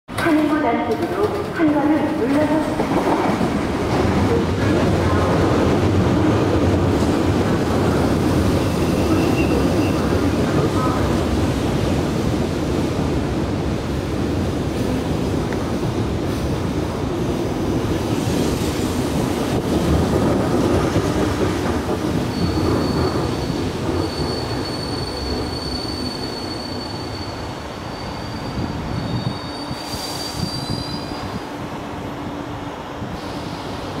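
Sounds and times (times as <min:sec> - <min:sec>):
train wheels rumbling on rails: 0:00.1 - 0:34.0
high brake squeal: 0:08.6 - 0:10.2, 0:22.2 - 0:31.4.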